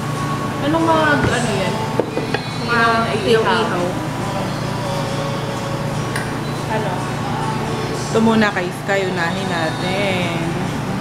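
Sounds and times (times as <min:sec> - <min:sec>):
low background hum: 0:00.0 - 0:11.0.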